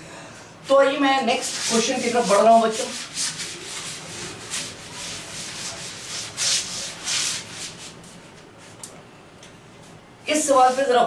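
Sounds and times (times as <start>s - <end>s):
duster swishing on chalkboard: 0.7s - 8.8s, 10.3s - 11.0s.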